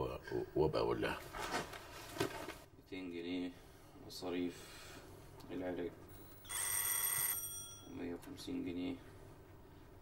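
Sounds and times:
doorbell ringing: 6.1 - 8.0.

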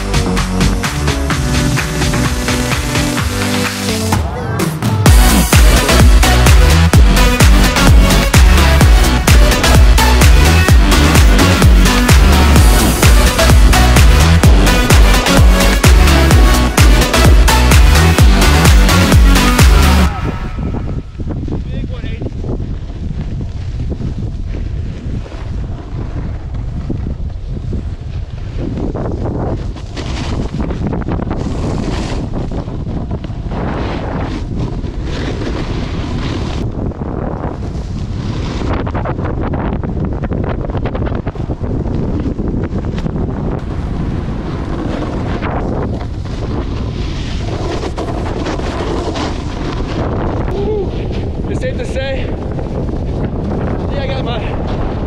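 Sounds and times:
wind rushing over microphone: 5.0 - 55.0
snowboard edges scraping snow: 22.4 - 39.6, 41.0 - 55.0.

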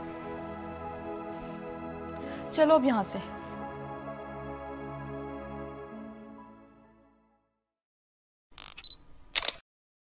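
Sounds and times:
camera shutter clicks: 8.6 - 9.6.

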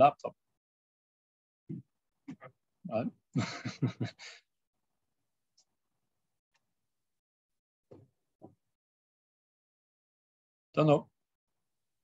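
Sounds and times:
man laughing breathily: 3.4 - 4.4.

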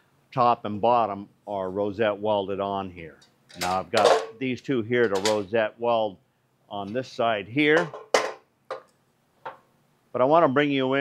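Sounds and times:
metallic clank: 3.5 - 4.4, 5.0 - 5.5, 7.7 - 9.6.

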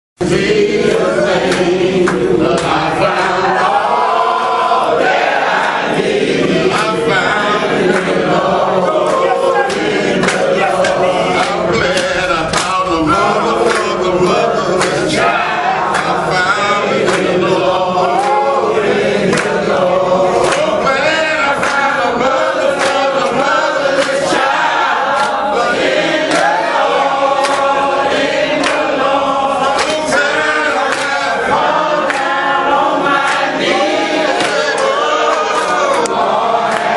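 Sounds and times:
men singing together: 0.2 - 36.9
sharp percussive beats: 5.1 - 17.4.

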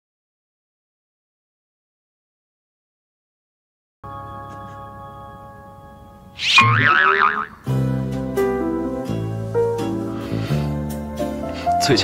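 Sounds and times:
light music with plucked notes: 4.1 - 12.0
comic wobbling boing: 6.4 - 7.7.

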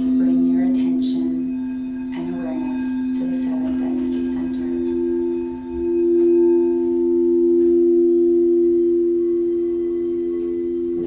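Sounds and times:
crystal singing bowls ringing: 0.0 - 11.0
faint high bowl tone: 0.0 - 11.0.

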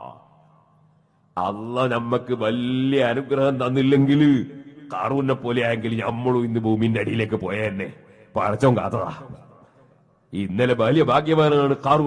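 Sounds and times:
man chanting: 1.4 - 9.5, 10.4 - 12.0.

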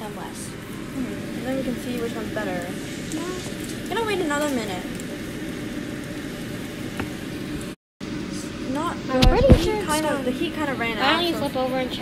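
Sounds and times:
toast sizzling in a pan: 0.6 - 7.7.

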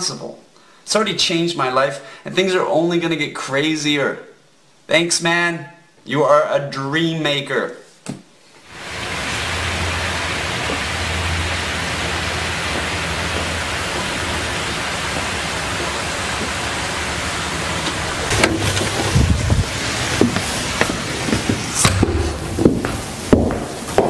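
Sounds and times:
low hum: 8.7 - 20.3, 21.7 - 23.2
steady rushing noise: 8.7 - 24.0.

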